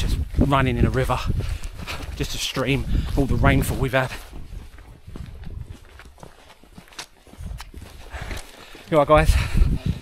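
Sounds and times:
footsteps on rocky dirt trail: 0.0 - 10.0.

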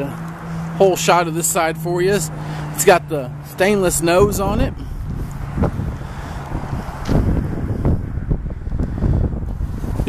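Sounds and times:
wind buffeting microphone: 3.7 - 10.0.

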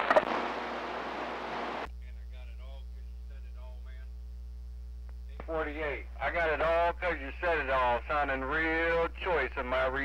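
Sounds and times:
radio static hiss: 0.0 - 10.0
steady mains hum: 0.0 - 10.0.

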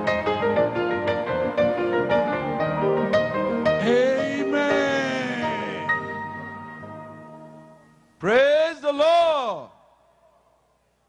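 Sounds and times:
man drawing out word into microphone: 3.8 - 6.2.

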